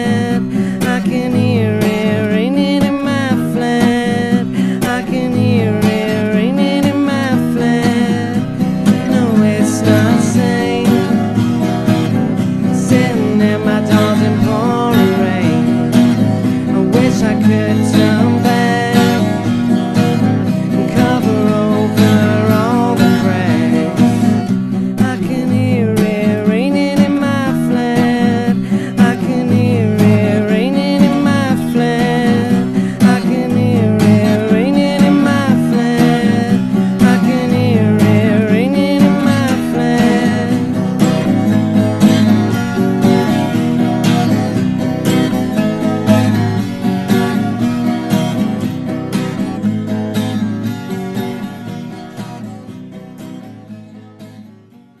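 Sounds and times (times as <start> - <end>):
strummed acoustic guitar: 0.0 - 55.0.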